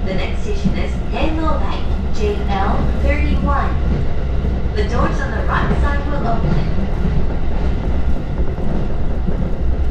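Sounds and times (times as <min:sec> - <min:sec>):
woman speaking: 0:00.0 - 0:03.8, 0:04.8 - 0:06.8
train rumbling at speed: 0:00.0 - 0:09.9.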